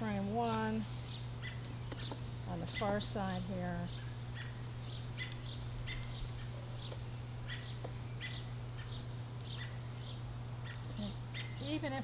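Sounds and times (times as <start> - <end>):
steady low hum: 0.0 - 12.0
bird chirping: 1.0 - 3.0, 3.7 - 12.0.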